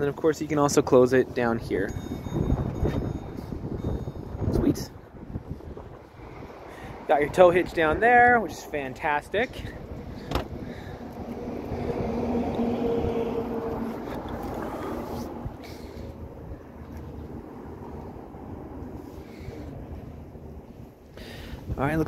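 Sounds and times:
wind on microphone: 1.6s - 8.3s, 9.8s - 19.0s
vehicle passing: 5.1s - 21.6s.

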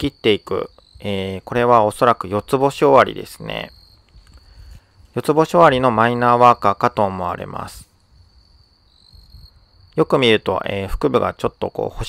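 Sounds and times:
insect high-pitched trill: 0.0s - 12.0s.

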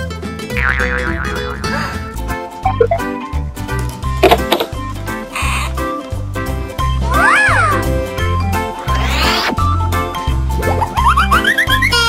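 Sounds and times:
children's background music: 0.0s - 12.0s
rising swoosh: 8.8s - 9.7s.

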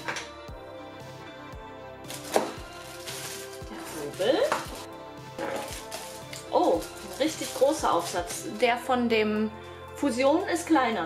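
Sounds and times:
background music: 0.0s - 11.0s
packaging rustling: 2.1s - 8.6s.

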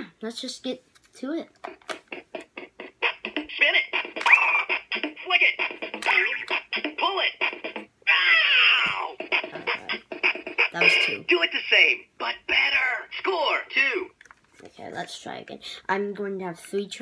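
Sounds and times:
electronic toy beat and music: 1.6s - 14.1s
recorded toy voice: 3.0s - 16.1s.

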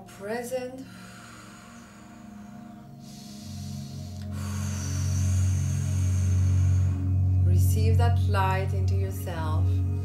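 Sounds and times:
ambient meditation music: 0.0s - 10.0s.

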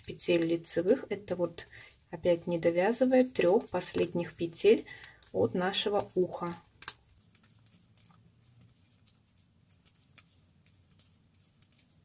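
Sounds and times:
knitting needles clicking: 0.0s - 12.0s.

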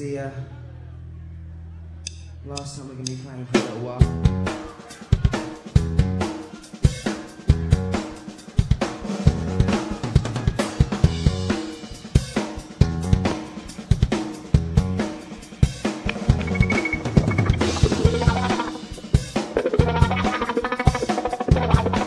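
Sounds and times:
drum kit beat: 2.6s - 22.0s
rock band playing live: 3.6s - 22.0s
low instrumental notes: 15.8s - 22.0s.

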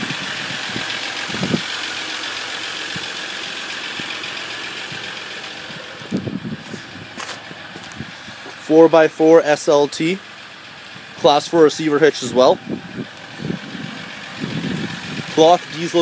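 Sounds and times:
diesel engine idling: 0.0s - 16.0s.

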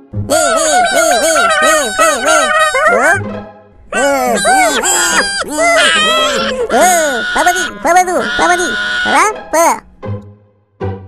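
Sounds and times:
cartoon characters chattering gibberish: 0.3s - 3.2s, 3.9s - 9.8s.

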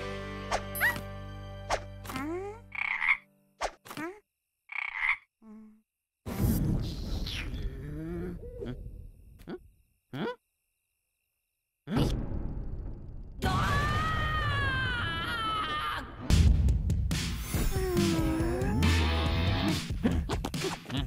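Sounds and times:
background music: 0.0s - 3.5s, 16.2s - 20.7s
cartoon frog croaking: 2.0s - 5.8s, 7.3s - 10.5s.

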